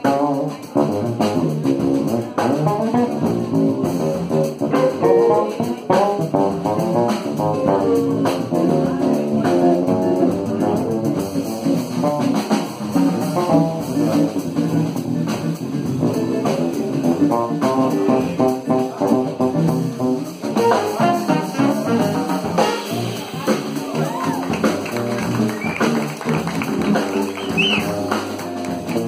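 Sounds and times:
drum kit: 0.0 - 29.0
electric bass: 0.0 - 29.0
small jazz band playing: 0.0 - 29.0.

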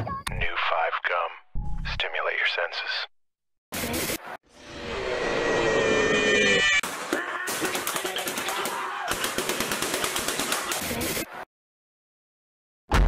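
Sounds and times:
automatic gunfire: 6.8 - 10.8.

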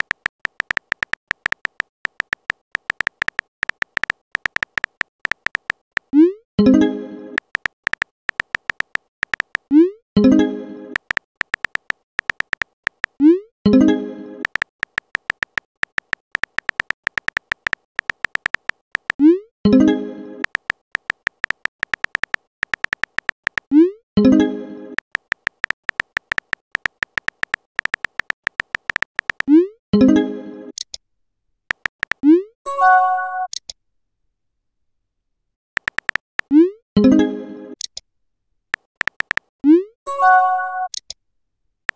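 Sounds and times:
electronic keypress clicks: 0.0 - 6.1, 7.4 - 9.8, 11.0 - 13.2, 14.4 - 19.2, 20.4 - 23.7, 25.0 - 29.5, 31.7 - 32.3, 35.8 - 36.6, 38.8 - 39.5
keyboard typing ticks: 0.0 - 6.8, 7.4 - 13.8, 14.4 - 23.9, 25.0 - 29.6, 31.7 - 32.4, 35.8 - 36.7, 38.7 - 39.5.

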